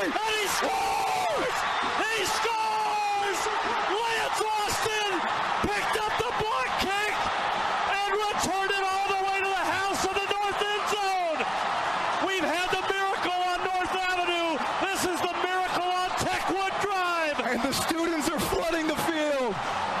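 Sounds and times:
excited voices yelling: 0:00.0 - 0:20.0
stadium crowd cheering: 0:00.0 - 0:20.0.

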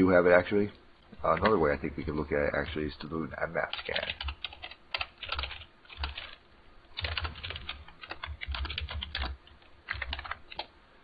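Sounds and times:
computer keyboard typing: 0:03.6 - 0:10.7.

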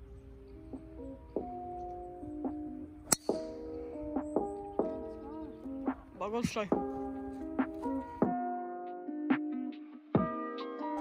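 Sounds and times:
background music: 0:00.0 - 0:11.0
golf club striking ball: 0:03.0 - 0:03.8.

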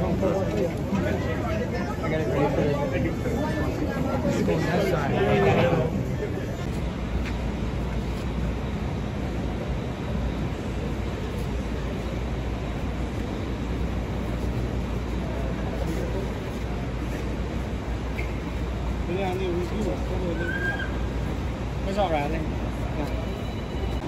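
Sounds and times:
faint voices: 0:00.0 - 0:08.7, 0:09.3 - 0:24.0
street traffic rumble: 0:00.0 - 0:24.0.

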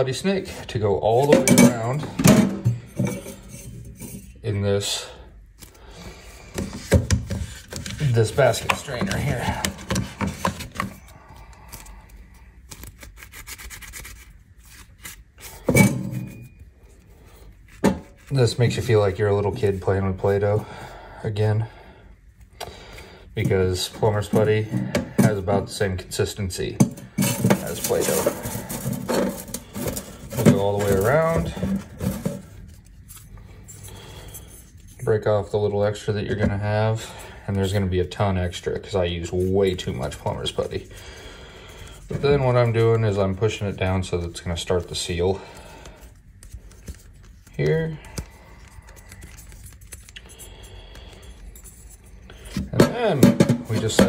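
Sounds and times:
handling noise: 0:26.8 - 0:33.2.

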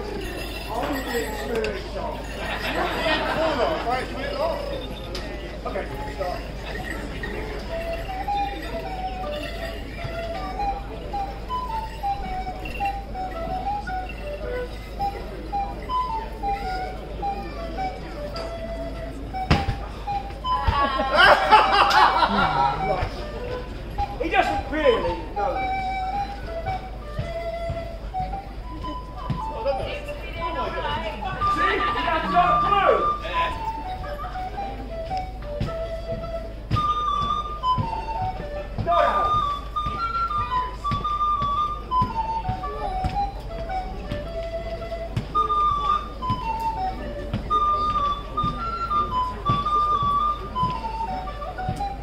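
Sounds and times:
held musical notes: 0:00.0 - 0:52.0
whistle tune: 0:00.0 - 0:52.0
soft low thuds: 0:05.9 - 0:52.0.

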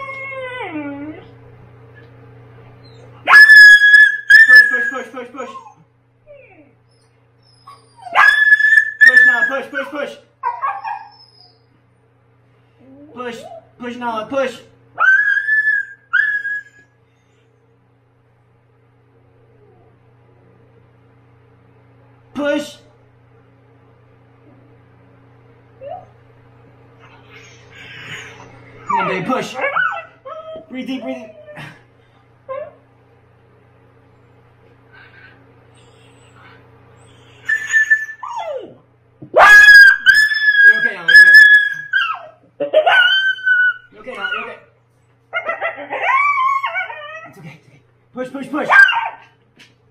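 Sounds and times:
dog faint whimper: 0:00.0 - 0:01.4, 0:04.4 - 0:08.2
dog whining and crying: 0:00.0 - 0:01.4, 0:02.8 - 0:09.7, 0:10.4 - 0:11.8, 0:15.0 - 0:17.0, 0:25.8 - 0:26.2, 0:27.3 - 0:31.8, 0:32.5 - 0:32.8, 0:35.8 - 0:38.8, 0:39.4 - 0:44.6, 0:45.3 - 0:47.4, 0:48.7 - 0:49.3.

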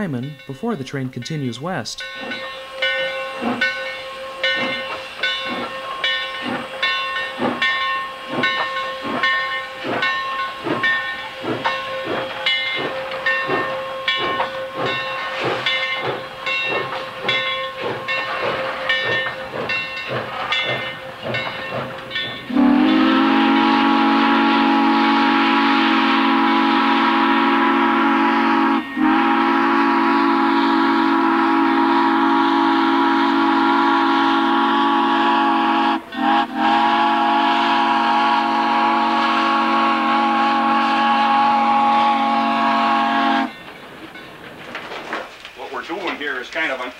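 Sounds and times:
steam locomotive chuffing: 0:00.0 - 0:46.9
steam whistle: 0:02.5 - 0:06.2, 0:22.5 - 0:43.5.

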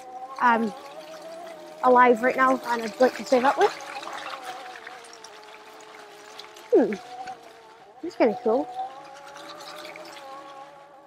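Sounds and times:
electric motor whining: 0:00.0 - 0:11.0.

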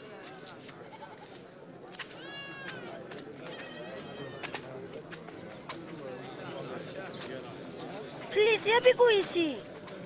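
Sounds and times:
murmur of distant voices: 0:00.0 - 0:10.0.

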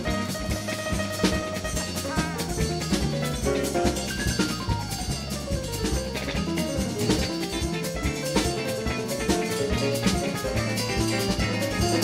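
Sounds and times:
double bass: 0:00.0 - 0:12.0
drum kit: 0:00.0 - 0:12.0
piano solo: 0:00.0 - 0:12.0.

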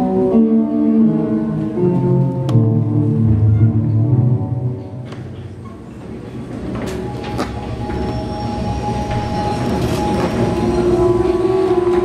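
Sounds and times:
held music notes: 0:00.0 - 0:12.0.

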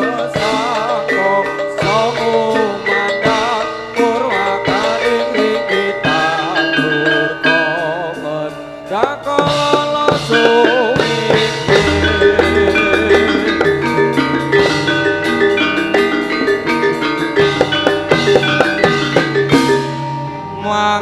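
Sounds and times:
gamelan ensemble playing: 0:00.0 - 0:21.0.

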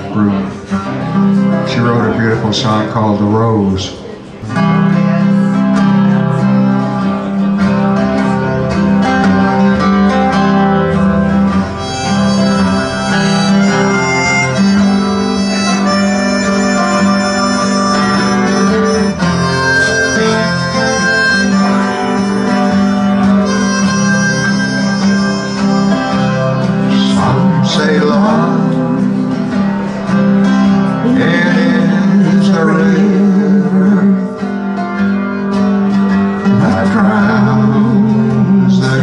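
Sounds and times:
acoustic guitar strumming chords: 0:00.0 - 0:39.0
harmonica slow melody: 0:04.0 - 0:39.0.

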